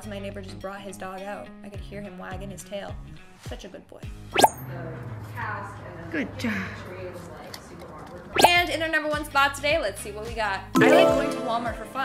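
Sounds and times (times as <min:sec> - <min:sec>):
rising pop sound effect: 0:08.4 - 0:08.7, 0:10.8 - 0:12.0.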